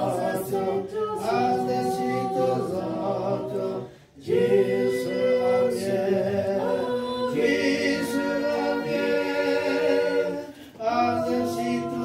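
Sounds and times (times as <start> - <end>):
men and woman singing in harmony: 0.0 - 12.0.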